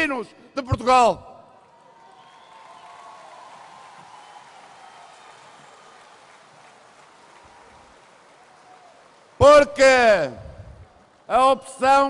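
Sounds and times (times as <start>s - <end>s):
audience applauding: 1.7s - 11.4s.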